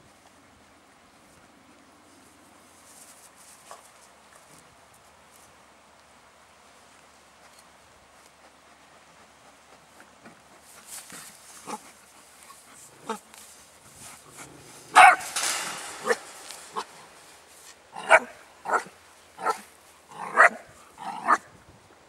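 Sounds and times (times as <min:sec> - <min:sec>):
puppy barking sharply: 0:14.9 - 0:15.4, 0:18.0 - 0:19.6.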